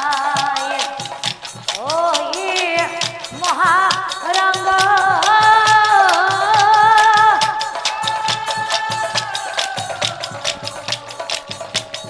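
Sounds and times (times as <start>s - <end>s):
small hand cymbals: 0.0s - 12.0s.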